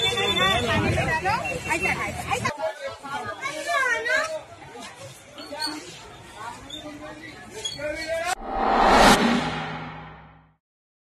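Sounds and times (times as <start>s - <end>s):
people talking in background: 0.0s - 8.4s.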